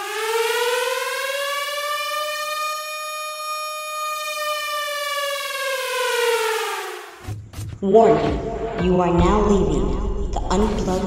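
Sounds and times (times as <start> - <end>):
air-raid siren wailing: 0.0 - 7.2.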